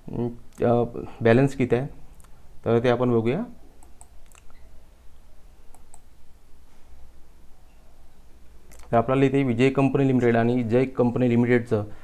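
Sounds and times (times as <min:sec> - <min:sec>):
quick sharp clicks: 0:05.7 - 0:06.1.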